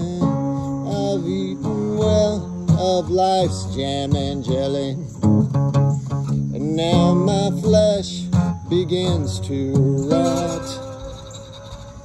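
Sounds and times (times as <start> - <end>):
man singing: 0.0 - 5.3, 6.3 - 12.0
slide acoustic guitar: 0.0 - 12.0.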